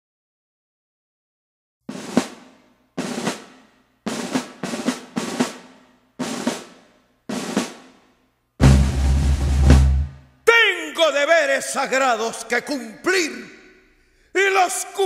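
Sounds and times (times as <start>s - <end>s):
snare drum rolls: 1.9s - 8.0s, 8.6s - 10.2s
bass drum hit: 8.6s - 10.2s.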